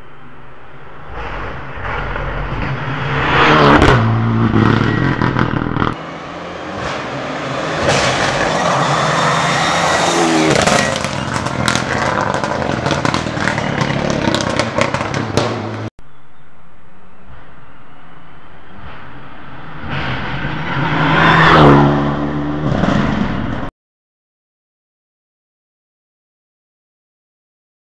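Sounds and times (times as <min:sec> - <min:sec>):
rally car engine revving: 0:00.7 - 0:15.9, 0:18.6 - 0:23.7
rally car passing by: 0:00.9 - 0:15.9, 0:18.6 - 0:23.7.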